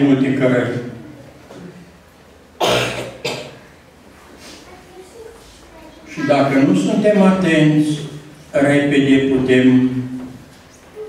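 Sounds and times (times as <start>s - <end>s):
man coughing: 2.6s - 3.6s.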